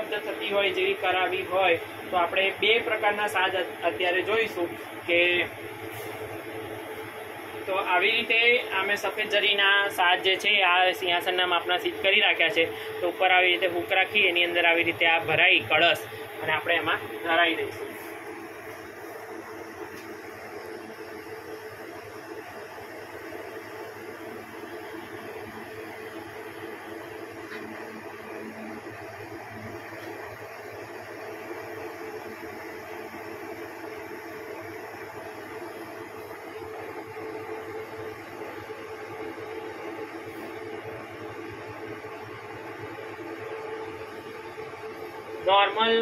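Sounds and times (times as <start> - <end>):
electric fan motor humming: 0.0 - 46.0.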